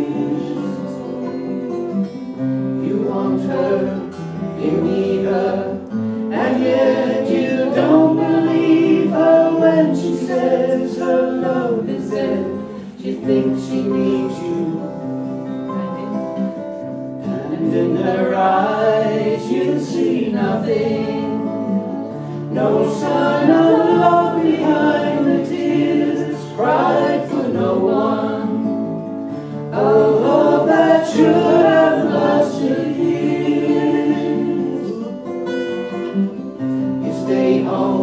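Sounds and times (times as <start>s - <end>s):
woman and man singing folk song: 0.0s - 16.5s, 17.2s - 38.0s
acoustic guitars: 0.0s - 38.0s.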